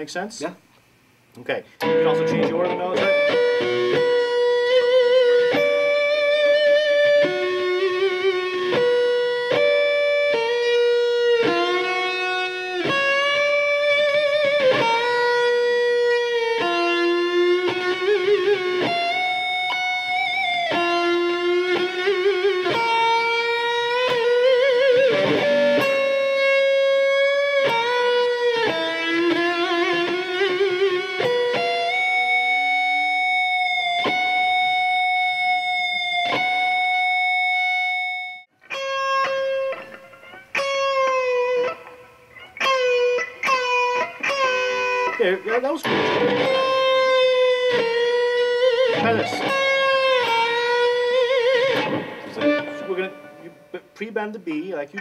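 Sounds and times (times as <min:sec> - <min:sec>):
electric guitar lead with bends: 0:01.8 - 0:54.0.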